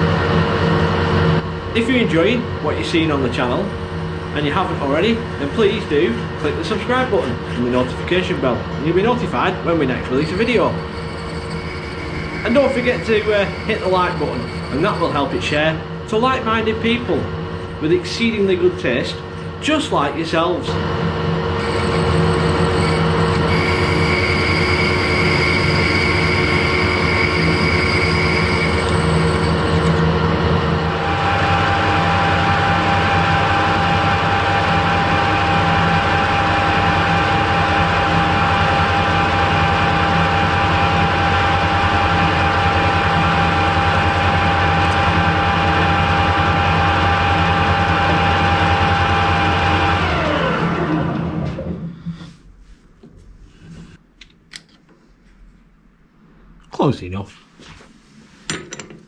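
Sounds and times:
metal lathe running: 0.0s - 51.1s
lathe spinning down: 0.0s - 52.0s.

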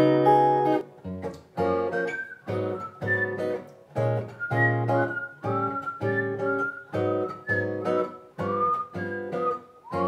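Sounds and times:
acoustic guitar strumming: 0.0s - 10.0s
whistled melody: 1.7s - 10.0s.

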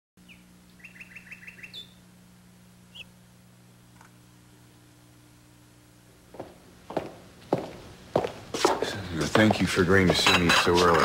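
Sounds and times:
small songbird chirping: 0.2s - 2.1s, 2.9s - 3.2s.

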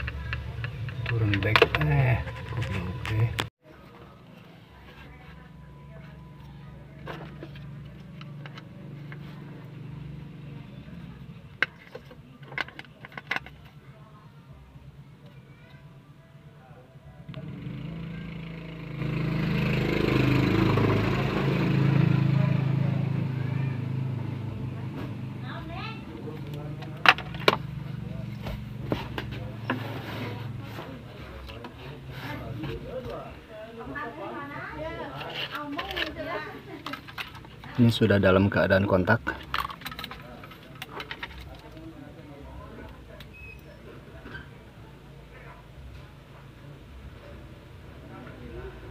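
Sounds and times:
plastic clicks and rubbing: 11.6s - 13.8s.

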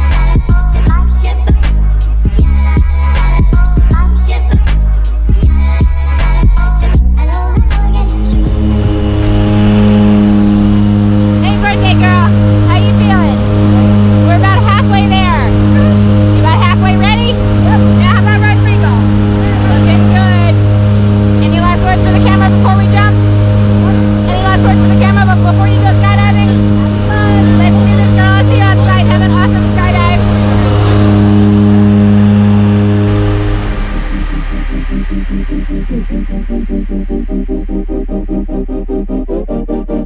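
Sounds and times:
plane engine and propeller drone: 7.5s - 38.0s.

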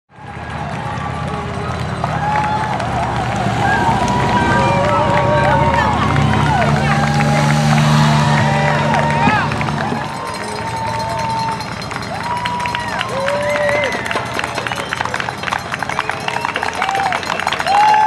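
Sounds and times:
spectators cheering and calling out: 0.1s - 18.0s
motorcycle engine passing slowly: 0.2s - 13.2s.

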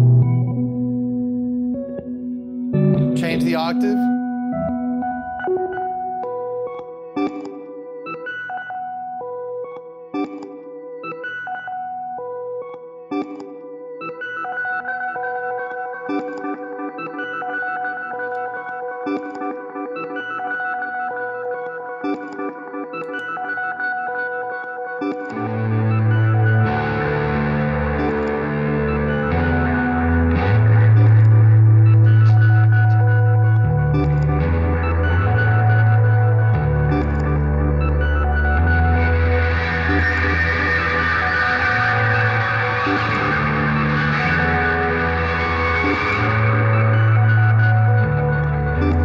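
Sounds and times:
low distorted guitar line: 0.0s - 4.8s, 25.3s - 49.0s
echoing plucked electric guitar: 0.0s - 8.4s, 25.3s - 49.0s.

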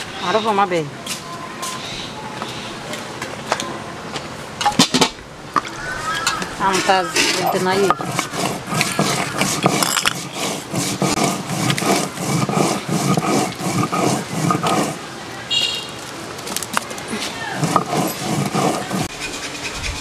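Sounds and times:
stone roller grinding seeds: 6.3s - 15.0s, 16.4s - 20.0s.

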